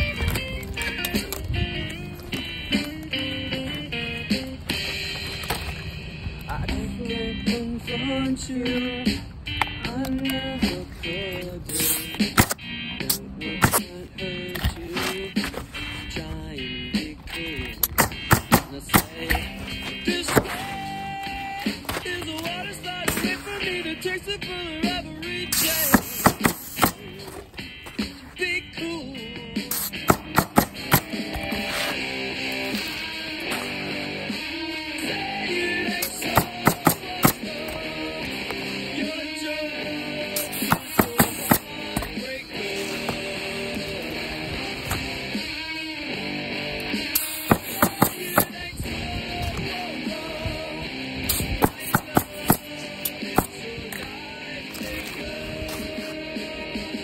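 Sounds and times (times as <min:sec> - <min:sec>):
background music: 0:00.0 - 0:57.0
pneumatic nailer firing: 0:11.8 - 0:12.6, 0:17.8 - 0:19.4, 0:25.5 - 0:27.0, 0:29.7 - 0:31.9, 0:36.0 - 0:37.4, 0:40.4 - 0:41.7, 0:47.1 - 0:48.6, 0:51.3 - 0:52.7.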